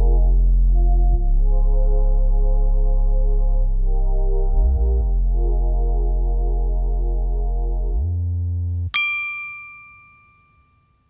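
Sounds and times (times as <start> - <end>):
bell-like chime ding: 9.0 - 11.0.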